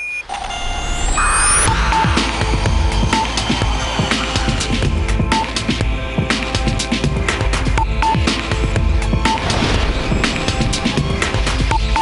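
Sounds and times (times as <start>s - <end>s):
short high beep: 0.0s - 2.1s
electronic title music: 0.2s - 12.0s.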